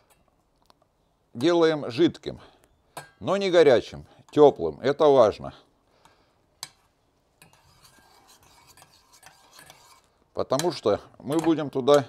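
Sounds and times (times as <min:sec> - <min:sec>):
metal spoon scraping saucepan: 0:07.4 - 0:12.0.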